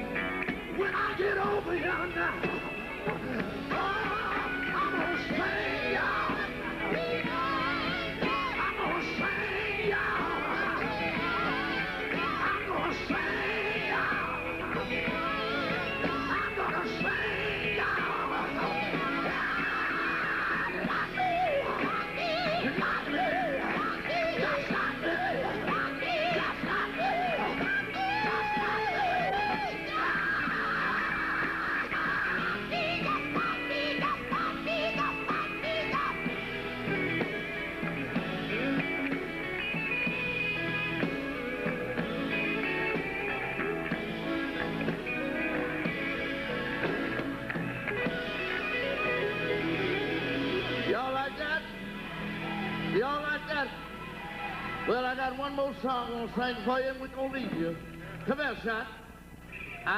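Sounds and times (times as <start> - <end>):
voices singing and wailing: 0.0 - 55.7
gospel band playing: 0.0 - 59.9.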